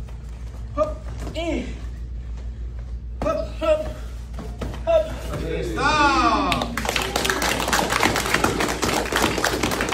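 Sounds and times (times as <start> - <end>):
spectators clapping: 6.4 - 9.9.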